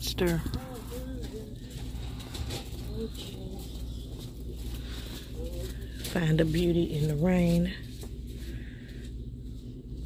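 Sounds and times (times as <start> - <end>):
low steady background hum: 0.0 - 10.0.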